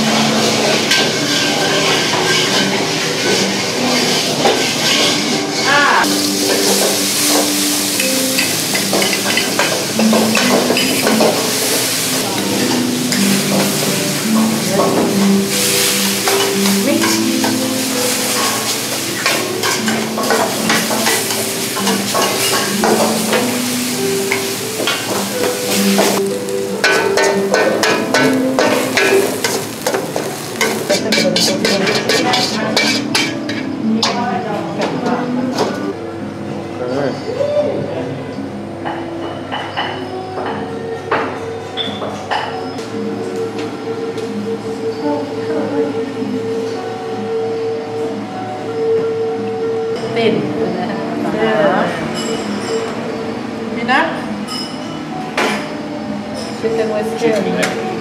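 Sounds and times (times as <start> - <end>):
metal spatula scraping pan: 0.0 - 6.8, 15.5 - 23.6, 24.3 - 34.2
chicken sizzling in a wok: 0.0 - 34.1
light background music: 0.0 - 58.0.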